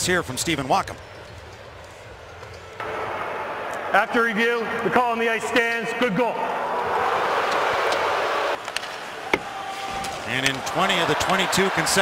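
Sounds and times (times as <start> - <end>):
crowd roar: 2.8 - 12.0.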